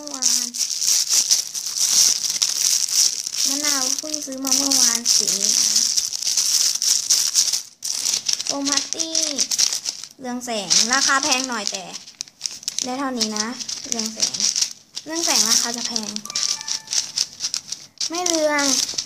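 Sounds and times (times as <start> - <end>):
girl speaking: 0.0 - 0.6, 3.4 - 5.6, 8.5 - 9.5, 10.2 - 12.0, 12.8 - 14.4, 15.1 - 16.4, 18.1 - 18.8
plastic bags of beads crinkling: 0.0 - 19.0.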